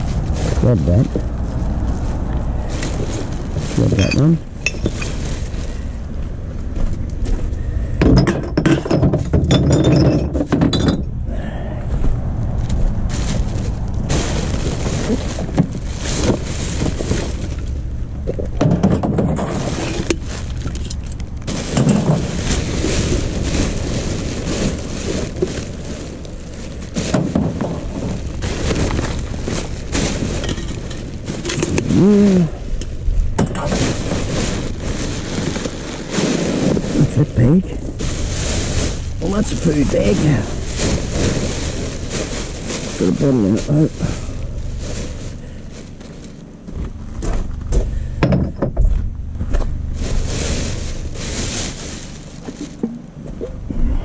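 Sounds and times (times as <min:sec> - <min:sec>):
plastic bags rustling: 0:00.0 - 0:11.0, 0:12.0 - 0:48.2, 0:49.1 - 0:53.7
glass bottles clinking: 0:03.8 - 0:05.3, 0:08.0 - 0:11.1.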